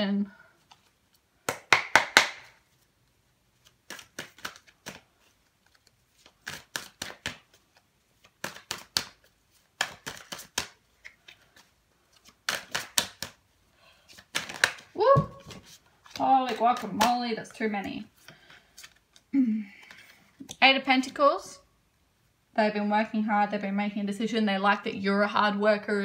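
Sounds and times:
cards being shuffled: 0:00.6 - 0:21.2.

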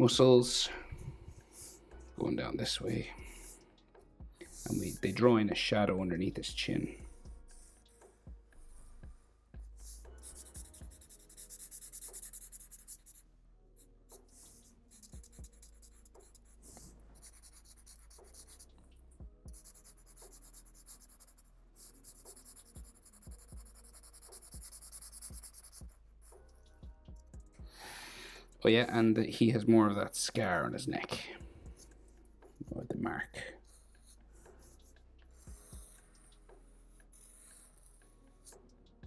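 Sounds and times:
marker scratching on paper: 0:00.9 - 0:03.6, 0:04.4 - 0:05.3, 0:07.0 - 0:09.0, 0:09.6 - 0:13.2, 0:14.1 - 0:18.8, 0:19.5 - 0:26.7, 0:33.6 - 0:38.8.

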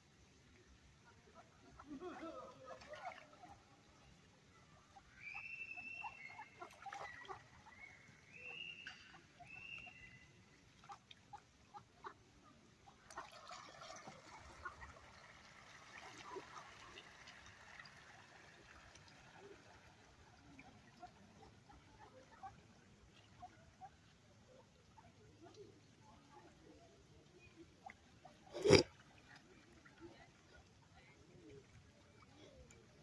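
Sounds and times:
ducks splashing in water: 0:01.3 - 0:04.1, 0:04.9 - 0:12.2, 0:12.9 - 0:24.1.

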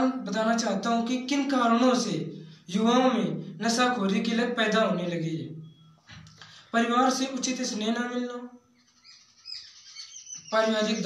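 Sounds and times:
man's voice: 0:00.0 - 0:05.5, 0:06.8 - 0:08.5, 0:10.5 - 0:11.0
bird chirping: 0:08.5 - 0:11.0.

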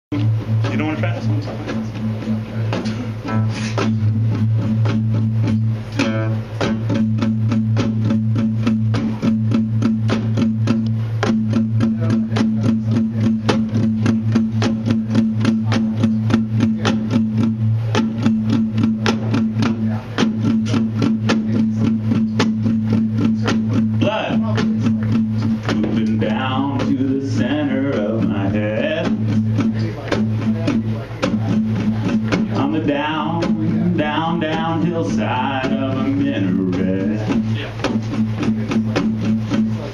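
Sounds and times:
drums: 0:00.1 - 0:39.9
guitar strummed quickly: 0:00.1 - 0:39.9
person singing: 0:23.2 - 0:39.8.

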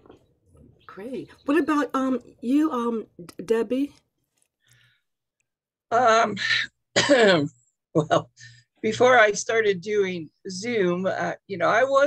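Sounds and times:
woman speaking: 0:00.8 - 0:04.0.

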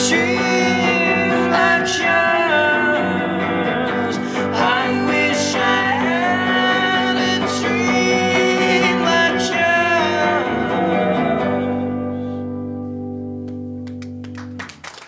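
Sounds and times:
person singing: 0:00.0 - 0:12.6
guitar playing: 0:00.0 - 0:14.8.

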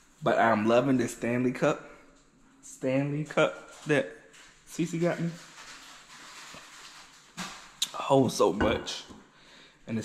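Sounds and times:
short breath: 0:09.3 - 0:09.9.

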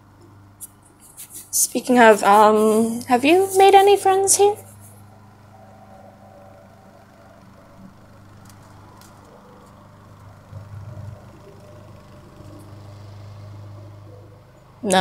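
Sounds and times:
faint low hum: 0:00.0 - 0:15.0.

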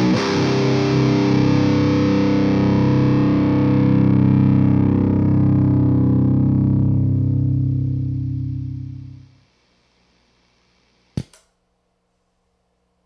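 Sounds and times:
distorted electric guitar chord ringing: 0:00.0 - 0:09.4.

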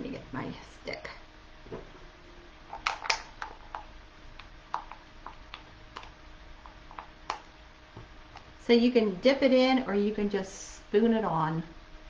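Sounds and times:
stick clicking and tapping: 0:02.7 - 0:07.5.

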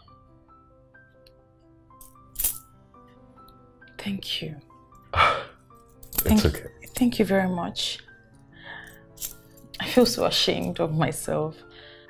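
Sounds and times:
soft background music: 0:00.0 - 0:12.0
keys jangling: 0:02.0 - 0:02.7, 0:05.8 - 0:07.0, 0:08.8 - 0:09.8.

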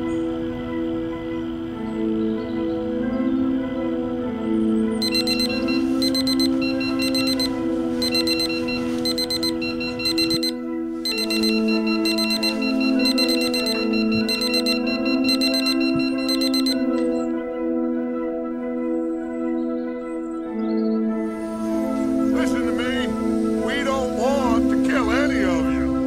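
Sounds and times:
ambient music with held tones: 0:00.0 - 0:26.0
digital alarm clock beeping: 0:05.0 - 0:17.2.

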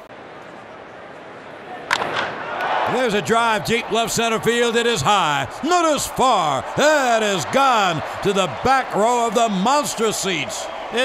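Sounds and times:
ballpark crowd noise: 0:00.0 - 0:11.0
bat cracking on ball: 0:01.9 - 0:02.7.

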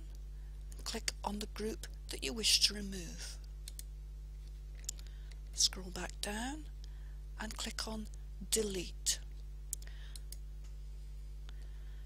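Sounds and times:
low electrical hum: 0:00.0 - 0:12.0
person speaking: 0:00.8 - 0:03.4, 0:05.6 - 0:06.7, 0:07.4 - 0:09.2
computer mouse clicks: 0:03.6 - 0:03.9.

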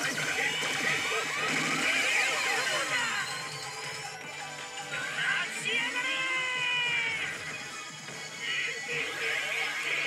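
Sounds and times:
slot machine game music: 0:00.0 - 0:10.0.

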